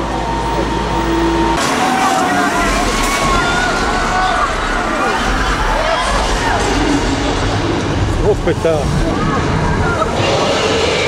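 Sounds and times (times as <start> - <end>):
tram rumbling in tunnel: 0.0 - 11.0
voices: 0.0 - 11.0.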